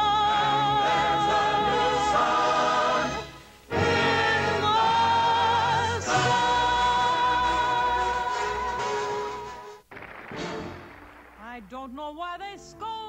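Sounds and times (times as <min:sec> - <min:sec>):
orchestra and chorus: 0:00.0 - 0:09.8.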